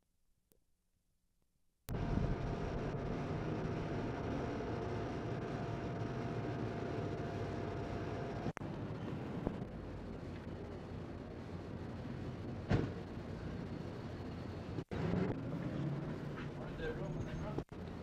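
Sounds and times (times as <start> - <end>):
traffic noise: 1.9 - 18.0.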